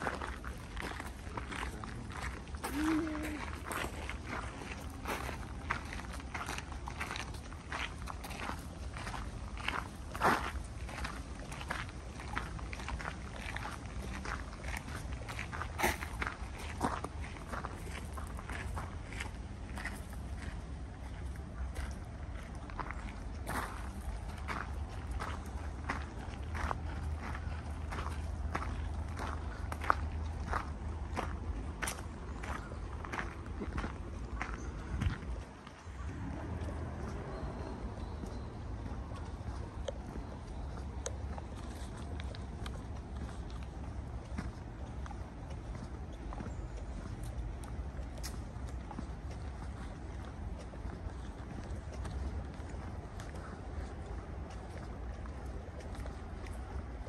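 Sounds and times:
footsteps on path: 0.0 - 57.0
steady low rumble: 0.0 - 57.0.

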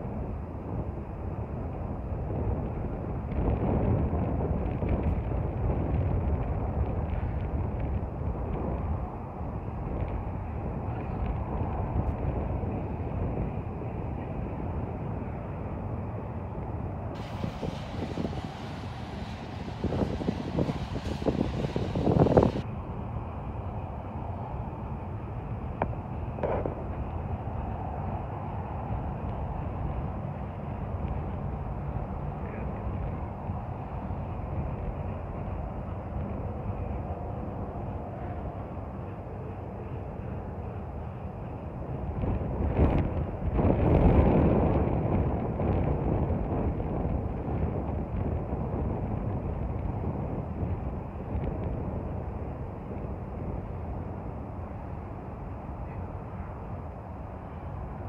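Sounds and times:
freight train wheels rumbling: 17.1 - 52.0
train wheels rumbling on rails: 17.2 - 22.7.

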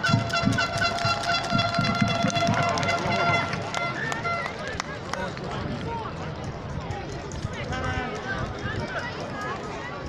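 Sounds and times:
spectators talking and calling out: 0.0 - 10.0.

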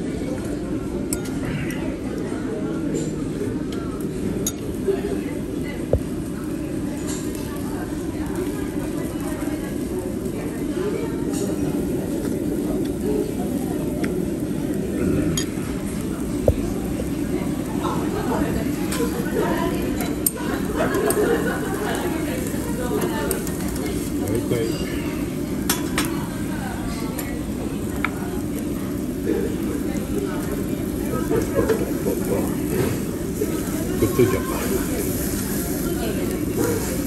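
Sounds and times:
background chatter: 0.0 - 37.0
meat sizzling on grill: 4.0 - 37.0
tableware and tongs clinking: 24.4 - 26.1.

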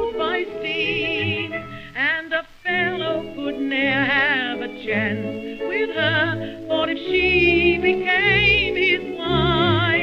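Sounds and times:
woman singing with vibrato: 0.0 - 10.0.

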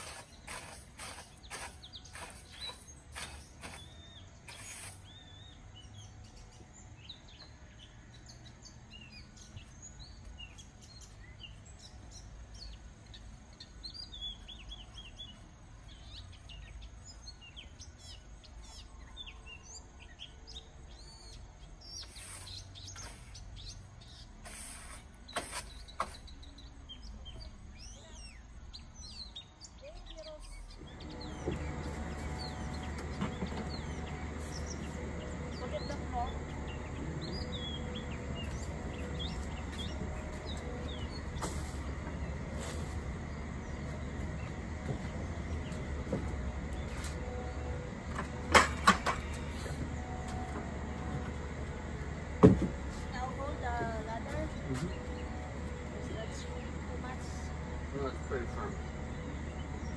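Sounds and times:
low outdoor rumble: 0.0 - 59.9
small birds chirping: 0.0 - 59.9.

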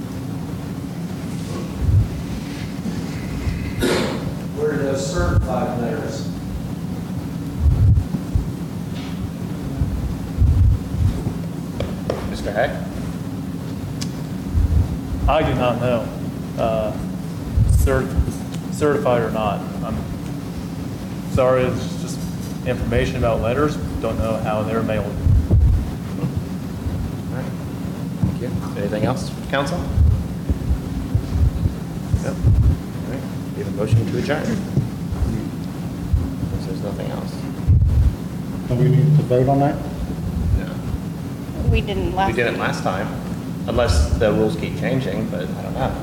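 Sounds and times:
low electrical hum: 0.0 - 46.0
wind buffeting microphone: 1.8 - 2.4, 7.5 - 8.6, 9.7 - 11.4, 14.5 - 15.7, 17.4 - 18.4, 25.0 - 27.2, 29.8 - 33.0, 37.6 - 38.2, 41.6 - 42.2
dull thumps on microphone: 28.2 - 28.4, 34.7 - 35.4.

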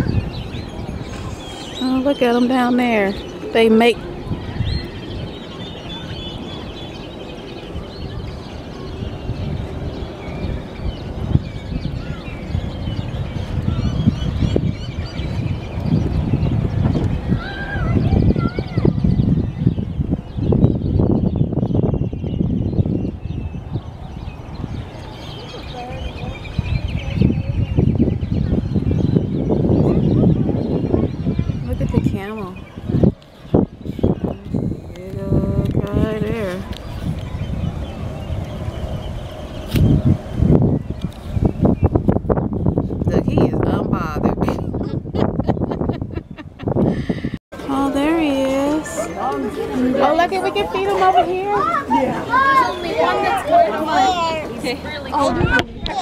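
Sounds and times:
birds chirping: 0.0 - 56.0
wind rumbling on microphone: 0.0 - 56.0.

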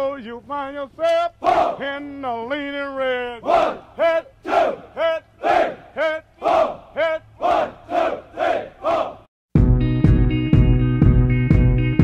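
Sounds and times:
soldiers shouting cadence in unison: 1.4 - 1.9, 3.4 - 9.3.

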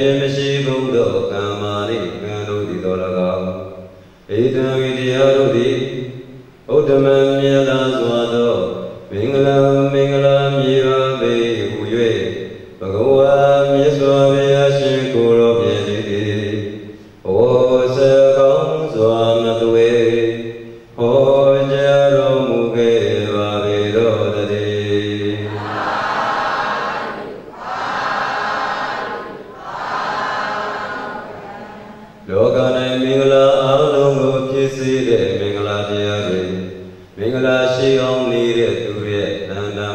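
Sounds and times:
monk chanting solo: 0.0 - 39.9
group of voices chanting: 25.4 - 32.2.

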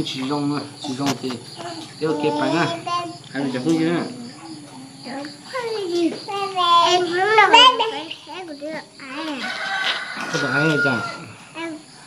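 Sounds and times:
rooster crowing: 9.3 - 11.5.

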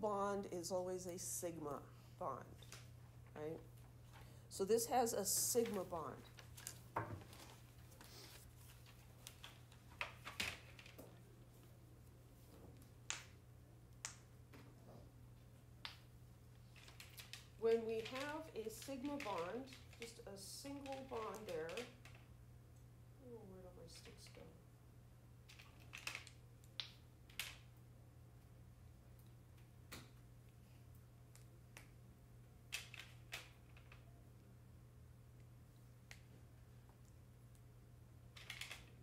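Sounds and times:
steady low hum: 0.0 - 10.0
low steady hum: 0.0 - 39.0.

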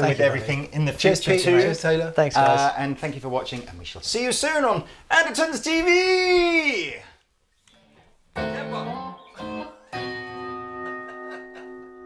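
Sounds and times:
guitar chord ringing: 8.4 - 12.0.

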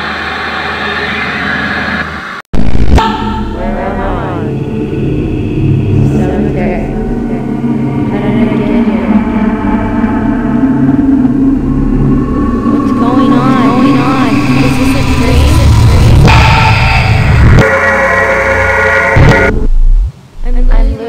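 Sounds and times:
low drone: 0.0 - 21.0
wavering pitched sweeps: 2.9 - 19.7.

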